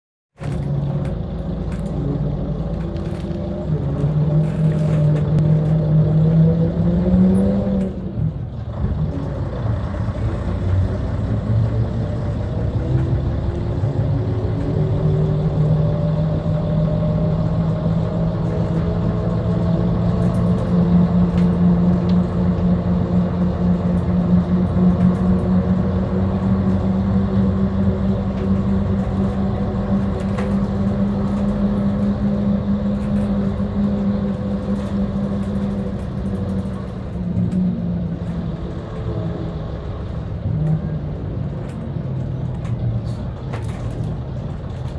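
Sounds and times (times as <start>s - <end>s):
bus engine drone: 0.3s - 44.9s.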